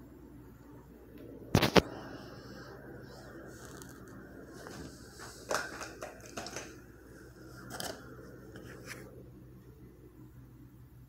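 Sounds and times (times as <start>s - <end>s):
faint steady hum: 0.0s - 11.0s
phone handling scrapes and clicks: 7.6s - 8.0s.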